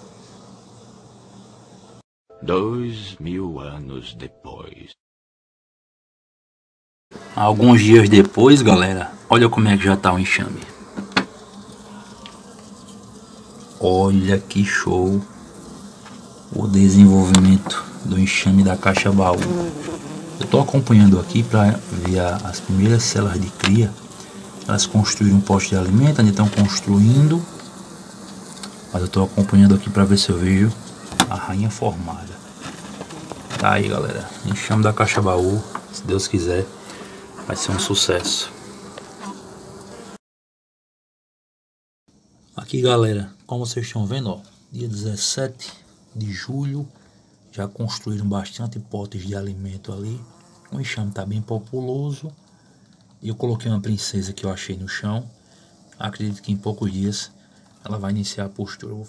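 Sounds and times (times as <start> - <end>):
bees buzzing: 0.0 - 2.0, 7.1 - 40.2, 49.9 - 51.5.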